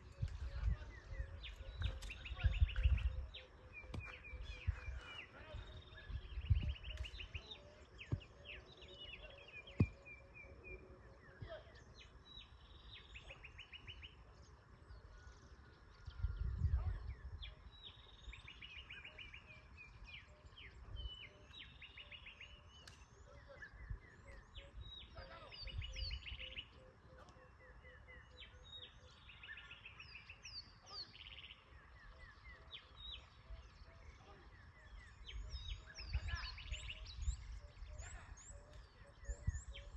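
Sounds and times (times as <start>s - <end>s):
birds chirping and trilling: 0.0s - 39.9s.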